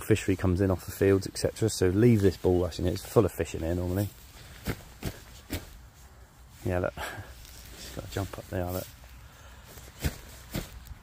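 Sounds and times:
soft footsteps on grass: 0.0 - 11.0.

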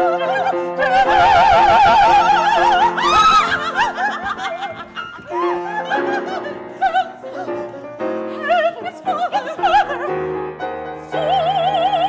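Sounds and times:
opera singer laughing in song: 2.8 - 6.5.

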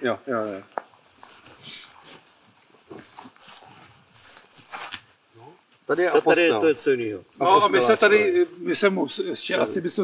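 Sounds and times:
wheat rustling against clothing: 0.0 - 9.0.

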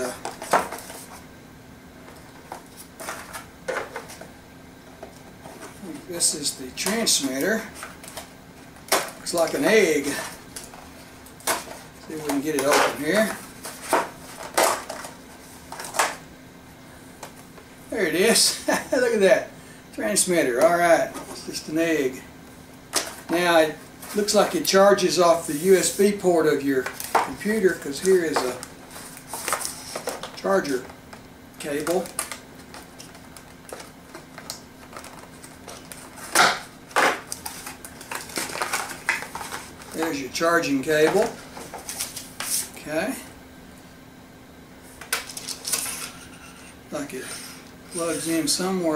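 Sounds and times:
cardboard packaging rustling: 31.7 - 40.2.

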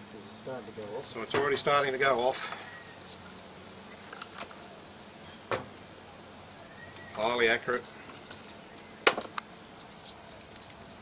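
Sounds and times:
low background hiss: 0.0 - 11.0
small containers being handled: 2.8 - 4.8, 7.0 - 11.0.

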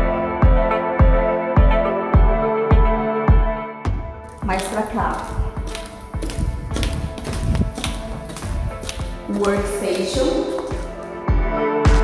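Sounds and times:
background music: 0.0 - 12.0
footsteps on hard polished floor: 4.3 - 11.2.

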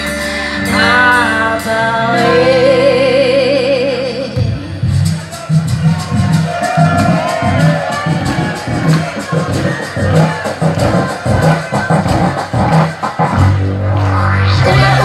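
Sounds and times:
live rock band playing: 0.0 - 15.0
bass guitar held low note: 13.5 - 15.0.

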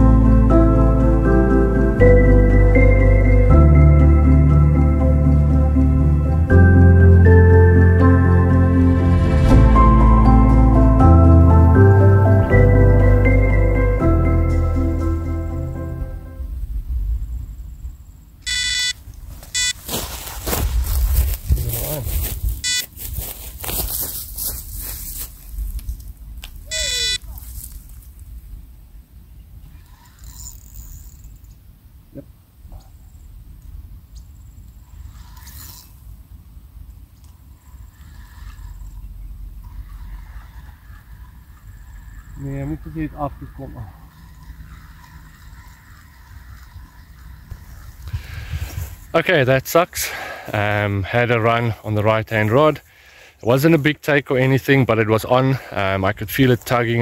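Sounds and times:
bite alarm beeping: 18.4 - 19.9, 22.6 - 23.0, 26.7 - 27.3
loud rustling: 18.5 - 26.0.

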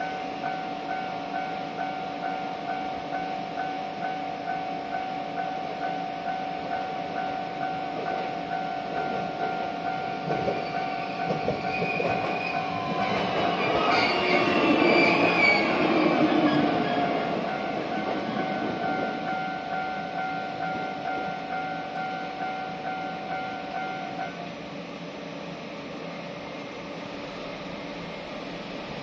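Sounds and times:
level crossing alarm bell: 0.0 - 13.0, 17.0 - 24.4
train wheels rumbling: 5.9 - 24.4.

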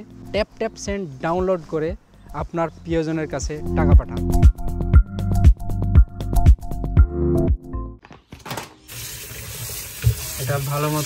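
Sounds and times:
electronic music with beat: 0.8 - 8.0
tap water splashing into sink: 8.9 - 11.0.

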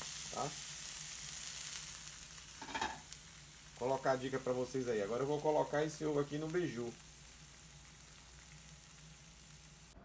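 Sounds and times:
eggs sizzling in a pan: 0.0 - 10.0.

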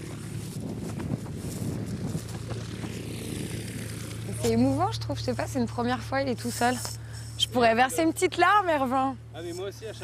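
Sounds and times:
wind on microphone: 0.0 - 3.7.

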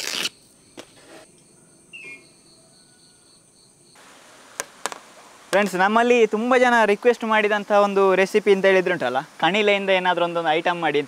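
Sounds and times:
insects trilling: 0.0 - 4.1.

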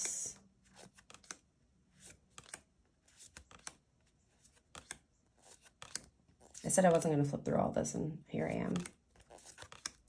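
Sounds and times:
cards being flipped by hand: 0.0 - 7.0, 8.7 - 10.0.

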